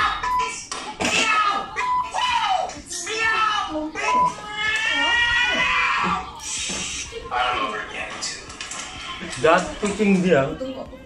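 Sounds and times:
meow-like cry: 4.1s - 6.2s.

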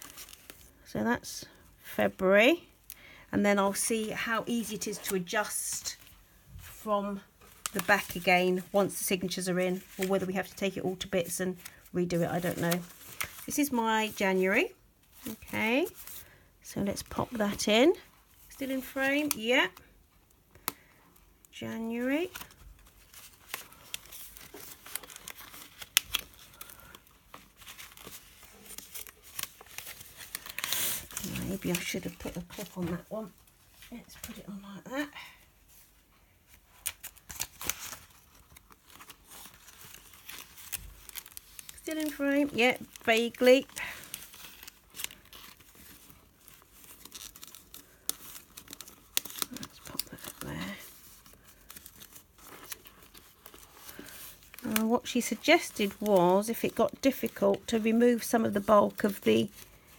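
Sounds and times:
paper pages rustling: 0.0s - 0.8s, 3.7s - 16.4s, 22.0s - 34.5s, 35.7s - 59.9s.

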